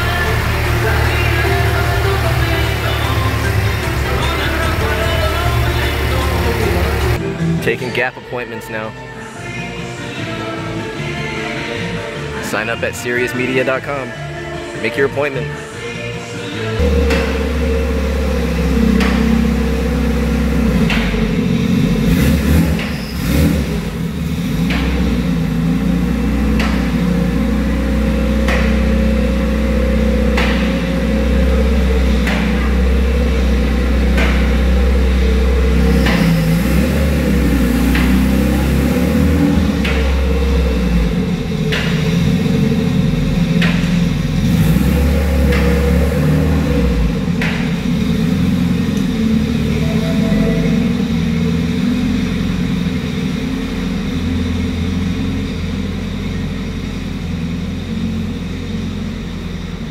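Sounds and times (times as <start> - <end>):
car engine rumbling: 0.0 - 59.9.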